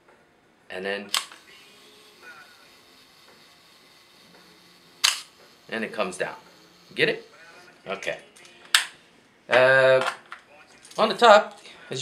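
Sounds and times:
camera shutter click: 0:01.1 - 0:01.9, 0:05.0 - 0:05.4.

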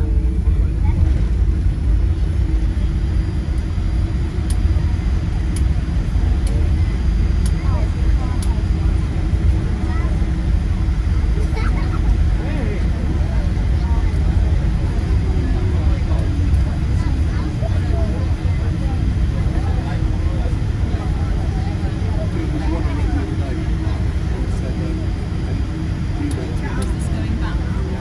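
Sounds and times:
airplane cabin low rumble: 0:00.0 - 0:28.0
passengers talking indistinctly: 0:00.0 - 0:28.0.

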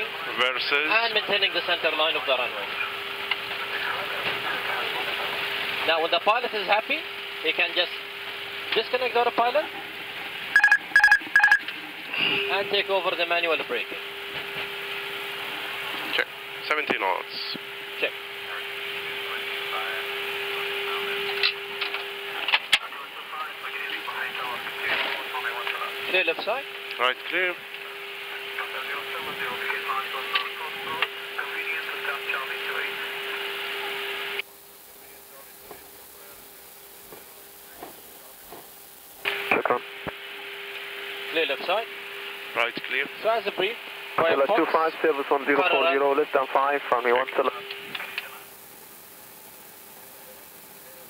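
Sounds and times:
constant low hum: 0:00.0 - 0:51.0
radio hiss and static: 0:00.0 - 0:51.0
garbled radio voice: 0:17.2 - 0:21.6, 0:22.3 - 0:27.6, 0:28.2 - 0:34.1, 0:39.5 - 0:39.9, 0:42.6 - 0:48.4.

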